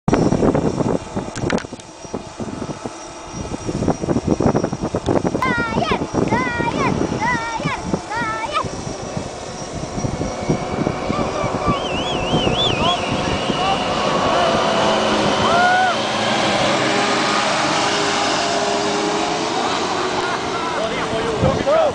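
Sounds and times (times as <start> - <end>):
tractor engines at full throttle: 0.1 - 21.9.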